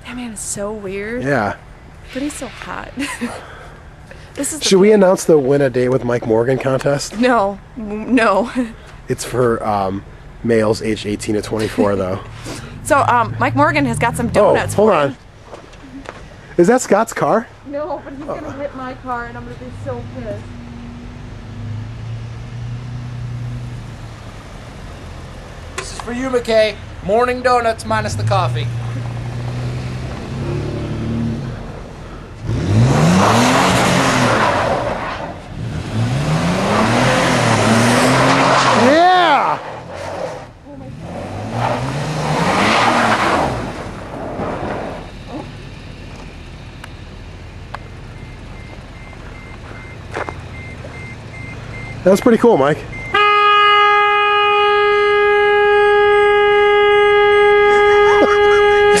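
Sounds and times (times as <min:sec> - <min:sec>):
car engine revving: 0:00.0 - 0:59.0
car horn blast: 0:52.5 - 0:59.0.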